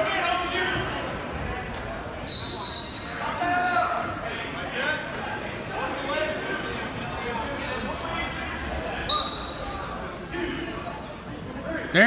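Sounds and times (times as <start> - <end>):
spectators' voices echoing: 0.0 - 12.0.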